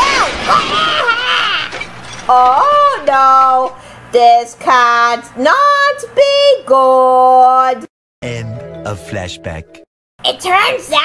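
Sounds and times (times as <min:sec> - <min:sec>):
person singing: 0:08.2 - 0:09.7.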